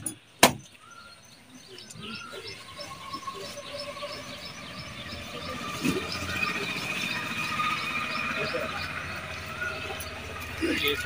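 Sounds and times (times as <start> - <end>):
bird chirping: 0.0 - 11.0
steady background noise: 0.0 - 11.0.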